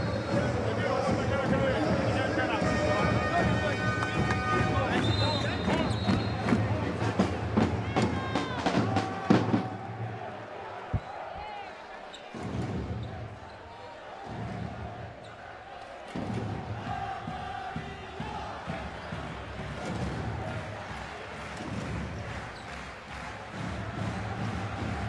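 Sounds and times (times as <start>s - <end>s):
crowd voices: 0.0s - 25.0s.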